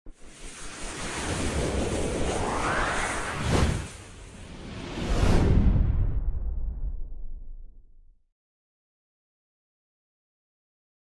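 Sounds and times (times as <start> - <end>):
whoosh sound effect: 0.3 - 6.2.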